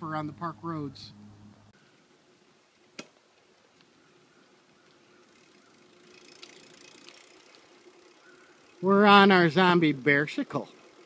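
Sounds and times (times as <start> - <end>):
bicycle rolling on paved road: 0.1 - 11.0.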